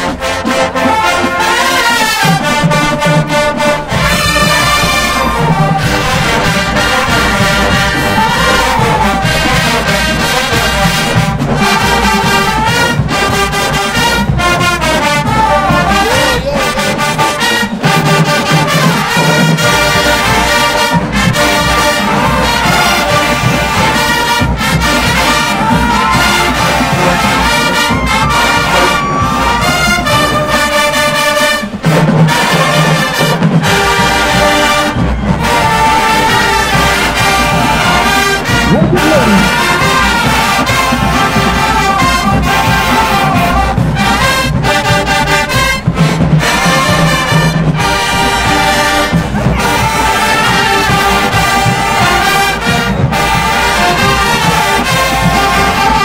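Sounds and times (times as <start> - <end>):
marching band brass: 0.0 - 56.0
marching band drums: 0.0 - 56.0.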